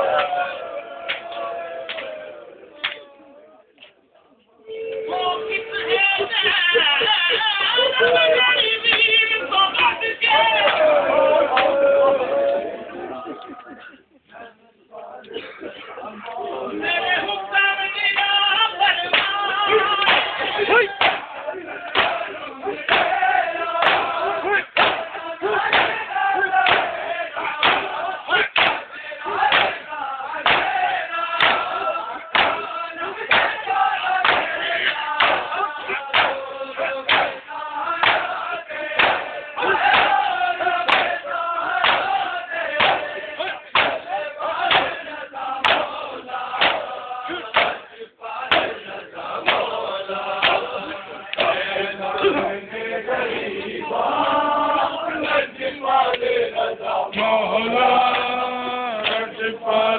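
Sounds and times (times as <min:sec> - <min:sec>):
men chanting in unison: 0:00.0 - 0:03.8, 0:04.7 - 0:59.9
rhythmic chest-beating thumps: 0:18.9 - 0:52.6.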